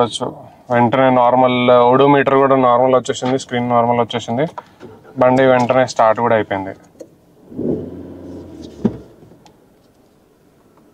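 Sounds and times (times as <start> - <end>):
car engine revving: 7.4 - 9.6.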